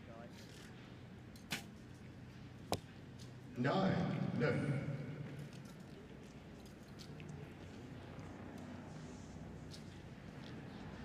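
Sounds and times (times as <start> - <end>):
low outdoor background: 0.0 - 11.0.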